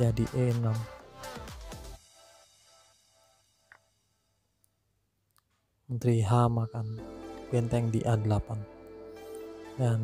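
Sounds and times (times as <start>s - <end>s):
man speaking: 0.0s - 0.9s, 5.9s - 8.7s, 9.8s - 10.0s.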